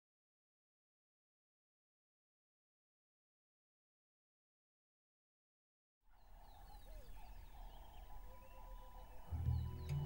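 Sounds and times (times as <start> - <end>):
birds chirping and calling: 6.1 - 10.0.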